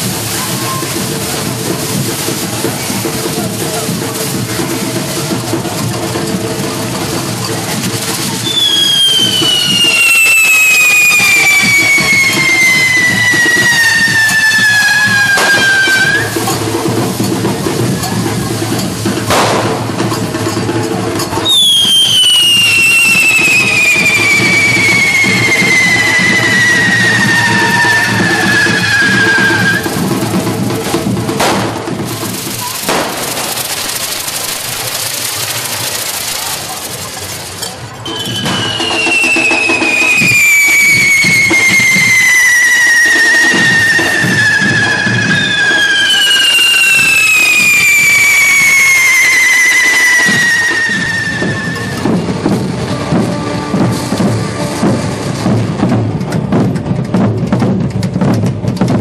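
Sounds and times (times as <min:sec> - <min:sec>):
hiss of burning sparks: 0:00.0 - 0:55.3
firework whistle falling in pitch: 0:08.3 - 0:16.6, 0:21.4 - 0:30.2, 0:38.0 - 0:55.3
sharp cracks: 0:19.3 - 0:20.1, 0:31.4 - 0:37.4.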